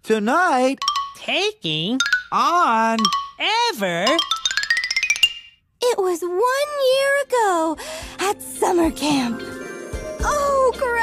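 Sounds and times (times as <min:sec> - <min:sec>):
toy xylophone rising run: 0:00.8 - 0:01.3, 0:02.0 - 0:05.6.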